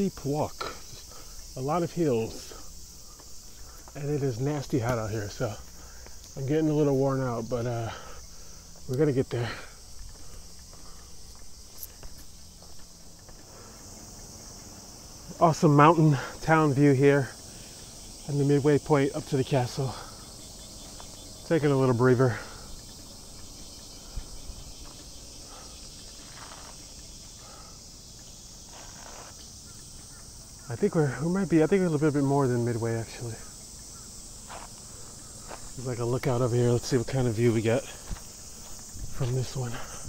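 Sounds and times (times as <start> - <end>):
footsteps on paved path: 0.0 - 31.5, 33.0 - 40.0
cicadas droning: 0.0 - 40.0
insects chirping in trees: 0.0 - 40.0.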